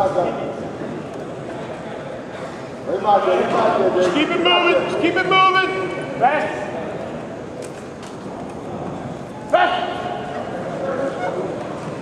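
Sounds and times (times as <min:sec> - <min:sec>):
echoing sports hall noise: 0:00.0 - 0:12.0.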